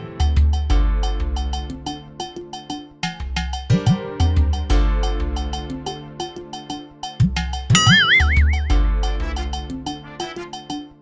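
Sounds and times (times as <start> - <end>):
high warbling tone: 7.8 - 9.1
background music: 7.8 - 10.4.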